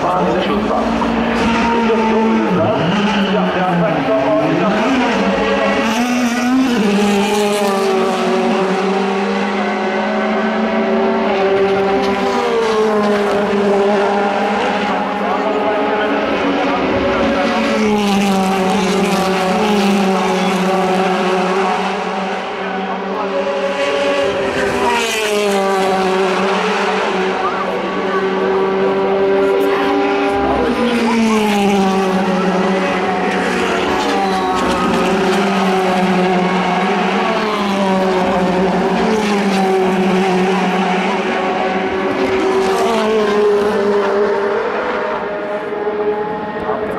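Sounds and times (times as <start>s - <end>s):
race car engines passing: 0.0s - 46.9s.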